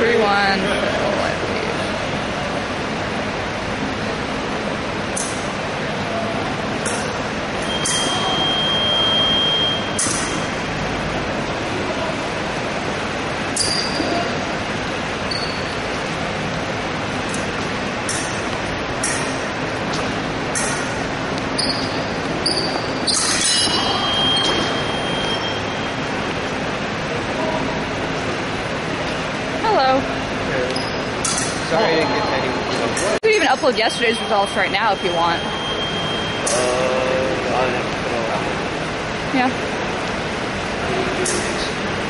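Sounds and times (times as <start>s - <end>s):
din of gym hall: 0.0s - 42.0s
fencing blades clinking: 18.1s - 19.4s, 21.7s - 24.8s, 31.2s - 31.7s.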